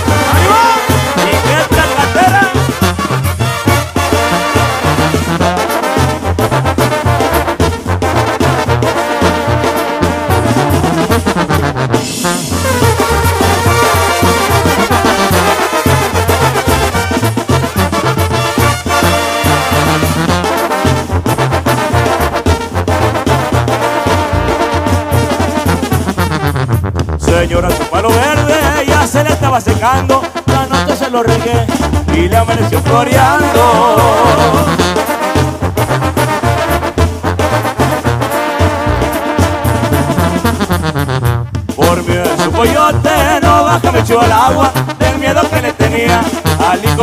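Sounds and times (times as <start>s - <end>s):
bass line: 0.0s - 47.0s
brass band music: 0.0s - 47.0s.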